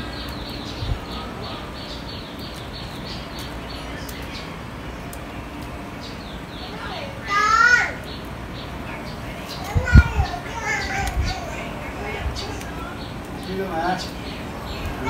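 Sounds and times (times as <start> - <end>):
outdoor background noise: 0.0 - 15.0
child calling out: 6.8 - 8.0, 9.7 - 11.6.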